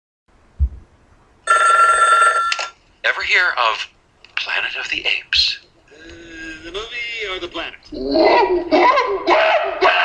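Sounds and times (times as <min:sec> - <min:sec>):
short low thump: 0:00.6 - 0:00.9
loud steady ringing tone: 0:01.4 - 0:02.8.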